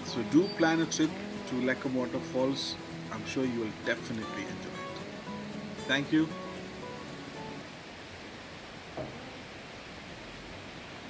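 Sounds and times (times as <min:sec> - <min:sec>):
background music: 0:00.0 - 0:07.7
steady hiss: 0:00.0 - 0:11.0.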